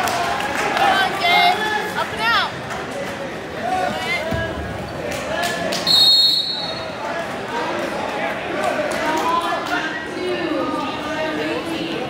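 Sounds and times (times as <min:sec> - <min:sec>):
referee whistle blast: 0:05.9 - 0:06.9
chatter of voices: 0:06.6 - 0:12.0.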